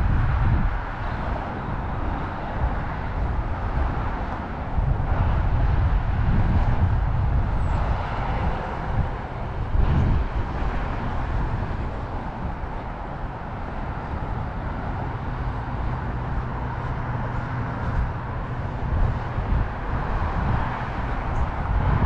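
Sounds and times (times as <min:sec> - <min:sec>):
road traffic roar: 0:00.0 - 0:22.0.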